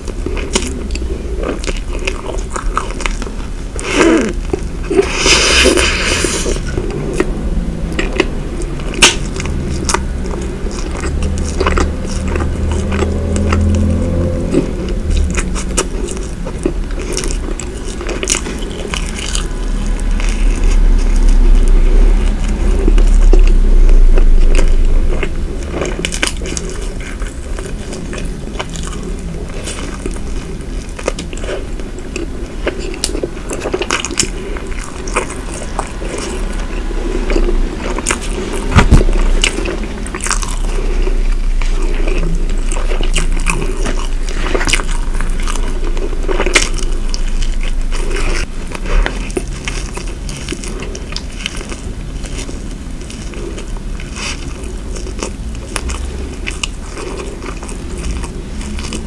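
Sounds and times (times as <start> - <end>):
biting and chewing pastry: 0.0 - 59.0.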